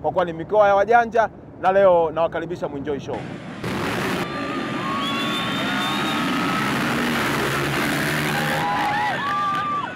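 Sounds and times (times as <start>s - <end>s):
dirt bikes revving: 3.3s - 9.6s.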